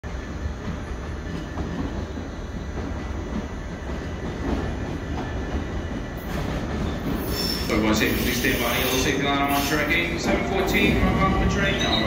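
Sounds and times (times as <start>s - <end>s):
electric train rumbling on rails: 0.0s - 12.0s.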